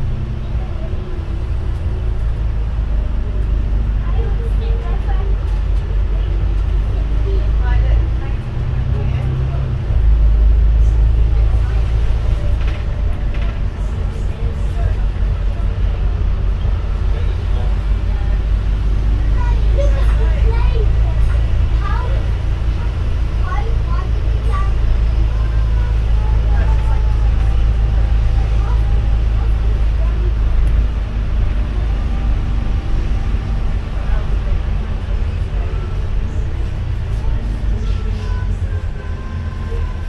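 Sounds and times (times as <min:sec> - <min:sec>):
bus engine rumble: 0:00.0 - 0:40.0.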